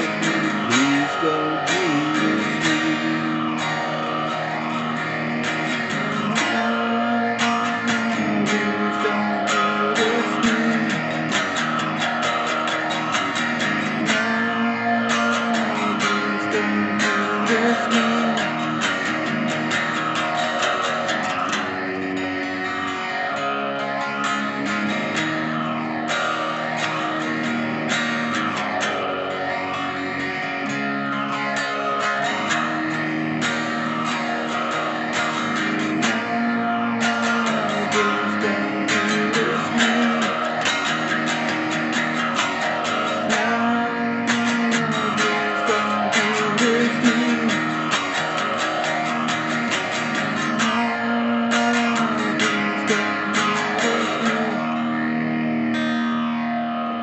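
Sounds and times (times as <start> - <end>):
electric guitar riff and chords: 0.0 - 57.0.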